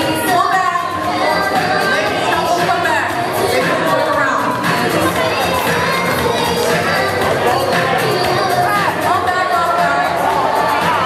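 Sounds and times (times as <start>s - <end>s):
children shouting: 0.0s - 11.0s
crowd cheering: 0.0s - 11.0s.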